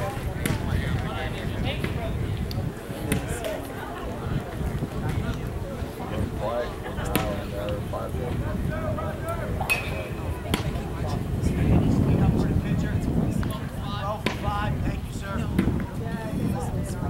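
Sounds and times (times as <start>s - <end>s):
people talking indistinctly: 0.0s - 17.0s.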